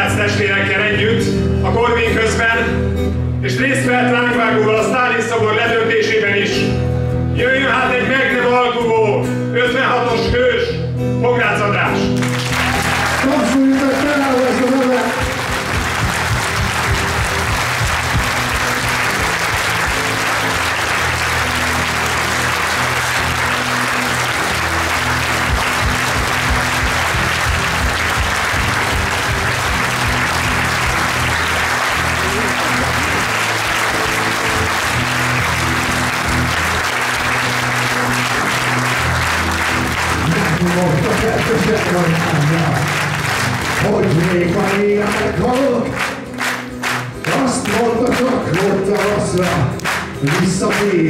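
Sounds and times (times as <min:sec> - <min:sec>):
crowd applauding: 0:12.1 - 0:51.0
music with repeating bass line: 0:15.2 - 0:51.0.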